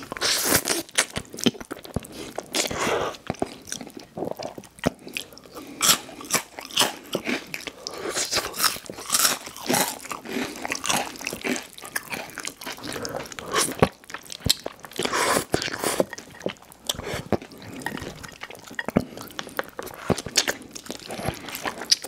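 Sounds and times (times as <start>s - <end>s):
chewing: 0.0s - 22.0s
chips crunching in mouth: 5.8s - 16.2s.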